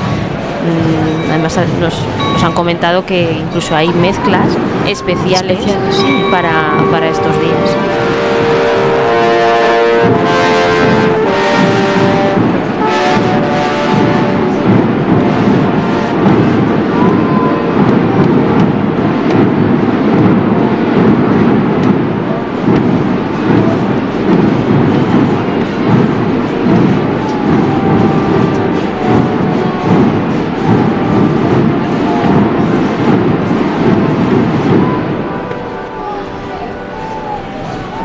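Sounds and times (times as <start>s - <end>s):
massed drums rolling: 0.0s - 38.0s.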